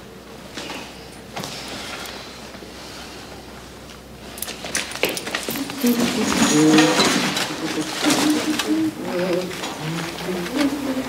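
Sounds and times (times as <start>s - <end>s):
coats rustling and shuffling: 4.2s - 11.0s
men murmuring: 5.5s - 11.0s.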